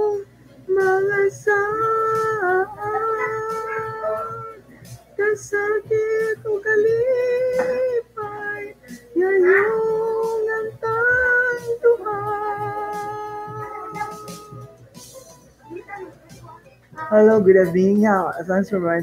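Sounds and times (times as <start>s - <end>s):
person singing unaccompanied: 0.0s - 19.0s.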